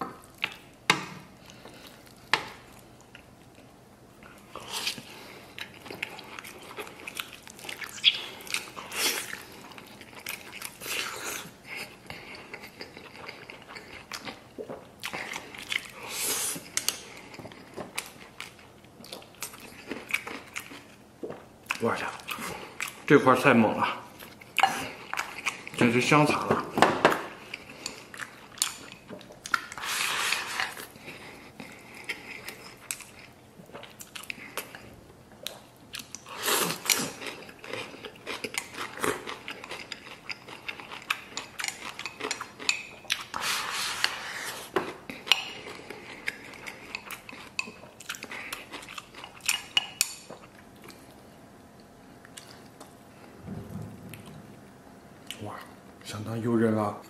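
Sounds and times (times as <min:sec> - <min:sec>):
chewing food: 0:01.4 - 0:23.2, 0:23.8 - 0:26.5, 0:27.3 - 0:54.6.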